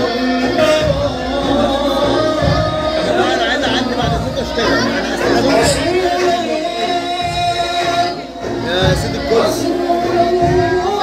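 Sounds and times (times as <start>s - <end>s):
voices talking at once: 0.0s - 10.2s
background music: 0.0s - 11.0s.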